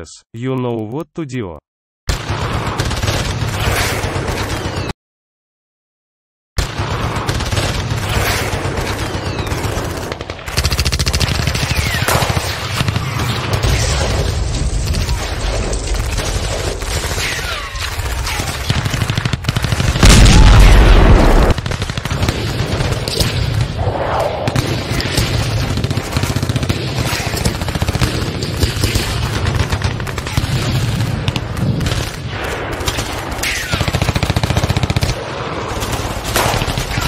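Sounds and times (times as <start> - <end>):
rapid automatic gunfire: 2.1 - 4.9, 6.6 - 20.5, 21.1 - 23.7, 24.5 - 37.0.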